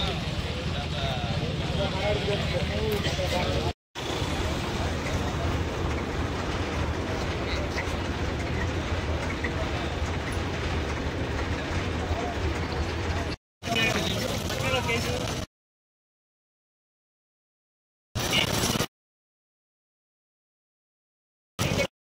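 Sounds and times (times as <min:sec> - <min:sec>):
roadside rumble with hiss: 0:00.0 - 0:15.4
voices talking: 0:00.0 - 0:15.5.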